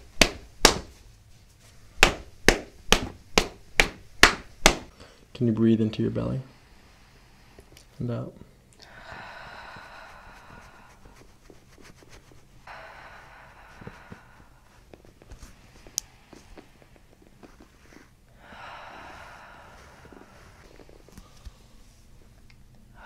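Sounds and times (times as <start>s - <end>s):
woman breathing slowly and deeply: 6.4s - 11.4s, 12.6s - 23.0s.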